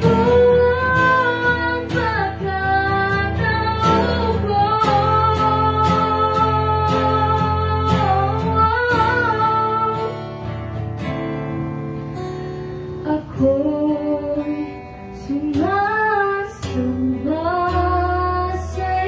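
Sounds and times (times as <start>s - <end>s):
woman singing slow song: 0.0s - 11.8s, 12.8s - 19.0s
acoustic guitar: 0.0s - 19.0s.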